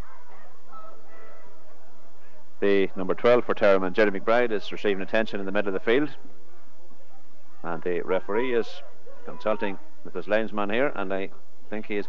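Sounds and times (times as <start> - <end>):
distant spectators calling out: 0.0 - 12.0
low electrical hum: 0.0 - 12.0.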